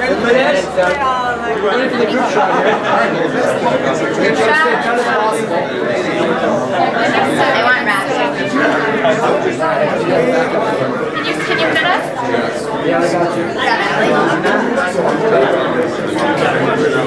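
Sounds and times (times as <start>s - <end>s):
crowd chatter in a hall: 0.0s - 17.0s.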